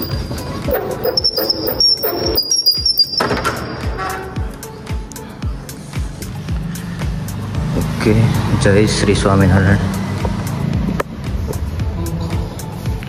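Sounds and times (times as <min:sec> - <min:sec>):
background music: 0:00.0 - 0:13.0
metal door hardware squealing: 0:00.7 - 0:04.5.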